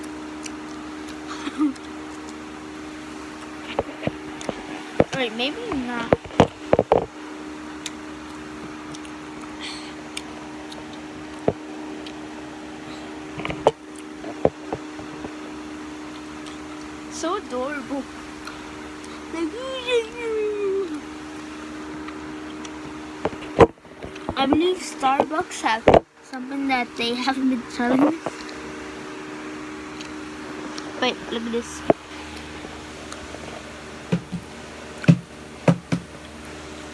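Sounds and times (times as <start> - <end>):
steady low hum: 0.0 - 36.9.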